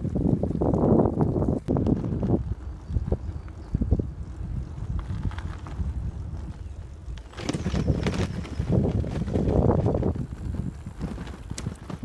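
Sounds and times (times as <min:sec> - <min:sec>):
bicycle tyres on gravel: 0:00.0 - 0:12.0
wind buffeting microphone: 0:00.0 - 0:12.0.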